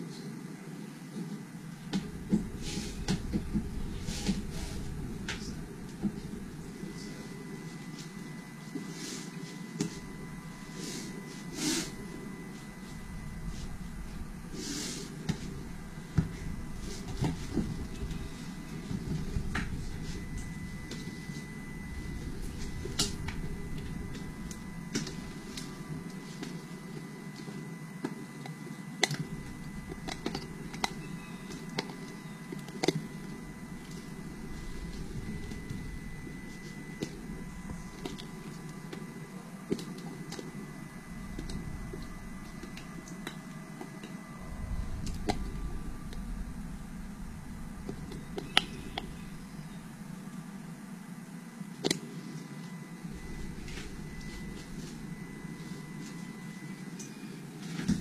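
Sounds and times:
faint high whine: 0.0 - 58.0
low room hum: 0.0 - 58.0.

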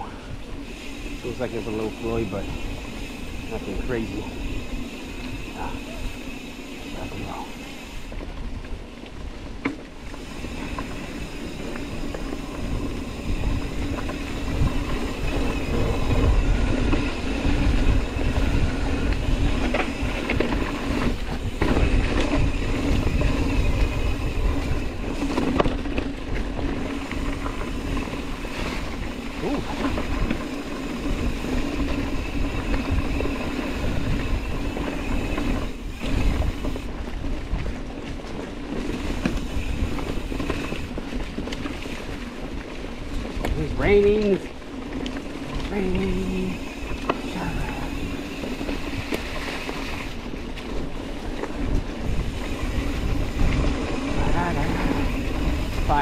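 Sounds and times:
bike tyres rumbling over dirt: 0.0 - 56.0.

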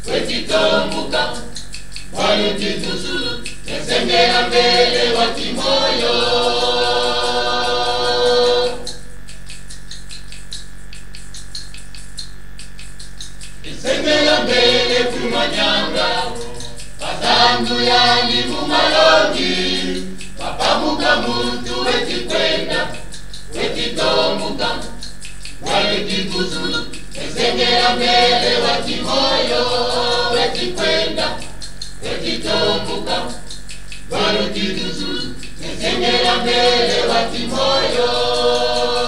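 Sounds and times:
choir singing: 0.0 - 9.1, 13.6 - 39.0.

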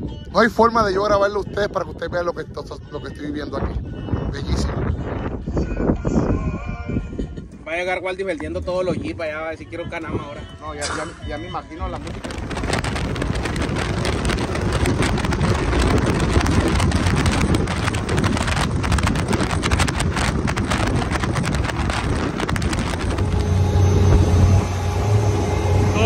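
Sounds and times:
wind buffeting on microphone: 0.0 - 26.0
off-road vehicle engine running: 12.1 - 26.0.

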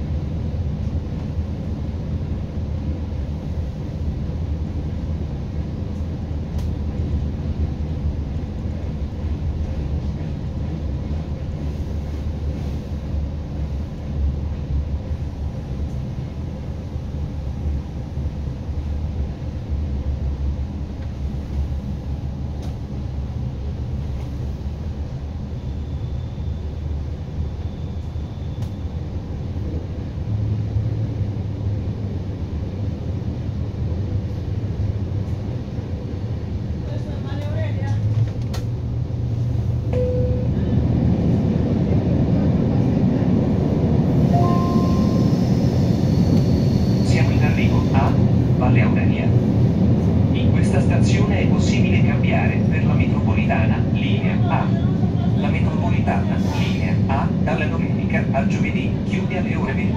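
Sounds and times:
train rumbling along track: 0.0 - 59.9.

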